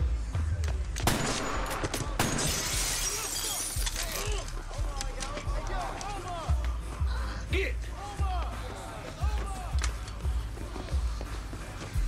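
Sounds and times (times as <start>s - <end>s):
glass shattering: 2.2s - 4.3s.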